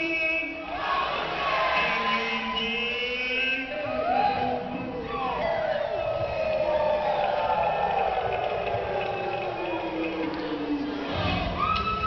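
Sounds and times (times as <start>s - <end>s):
audience noise: 0.0s - 12.0s
group singing together: 0.6s - 11.6s.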